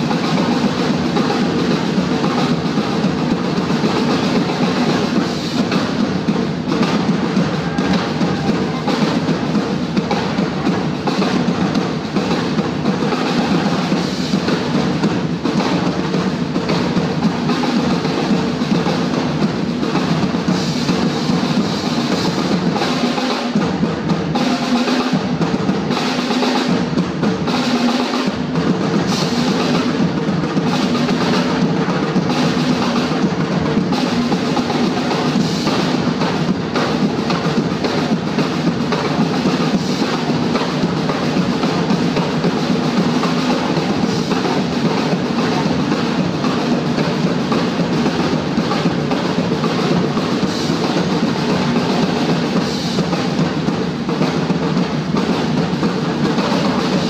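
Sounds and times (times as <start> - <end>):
group playing snare and tom drums: 0.0 - 57.0.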